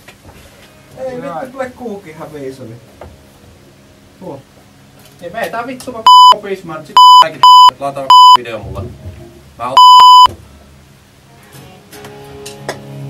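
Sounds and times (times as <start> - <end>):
censor bleeps: 6.1 - 6.4, 7.0 - 8.4, 9.8 - 10.3.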